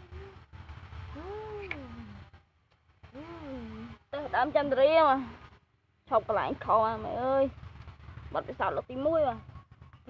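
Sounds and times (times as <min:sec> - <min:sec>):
drawn-out vocal call: 0:00.0 - 0:02.4, 0:03.0 - 0:04.2.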